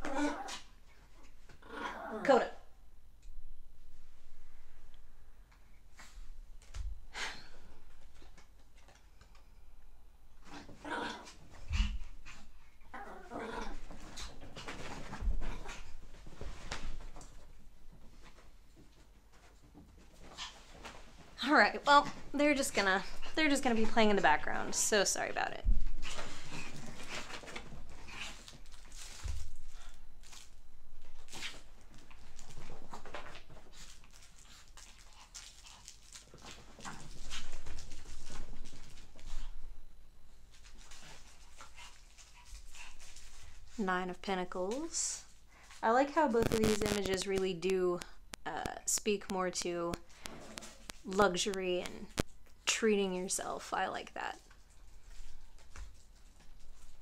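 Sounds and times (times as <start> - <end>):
dogs growling playfully: 10.4 - 16.0
dog paws and claws pattering: 13.8 - 39.7, 40.5 - 52.6, 54.2 - 57.0.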